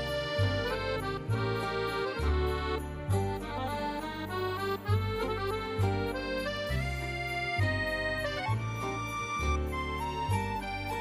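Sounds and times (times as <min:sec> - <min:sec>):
bass line: 0:00.0 - 0:11.0
held chords: 0:00.0 - 0:11.0.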